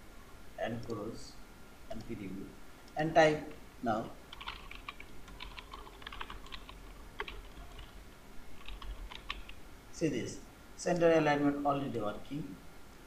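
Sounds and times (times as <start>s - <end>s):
typing on computer keyboard: 4.3s - 8.0s, 8.6s - 9.6s.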